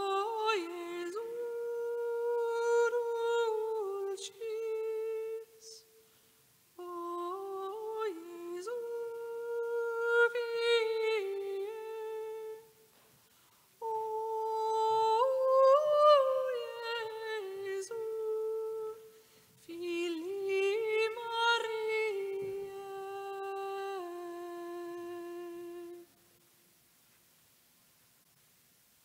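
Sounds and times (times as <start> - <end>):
person singing slow melody: 0.0 - 6.0, 6.8 - 12.8, 13.8 - 26.4.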